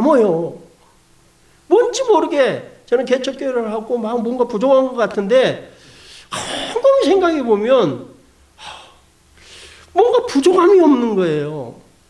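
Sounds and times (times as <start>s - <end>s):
man speaking: 1.7s - 5.8s, 6.4s - 9.0s, 9.9s - 11.9s
man breathing close to microphone: 5.7s - 6.7s, 8.6s - 9.9s.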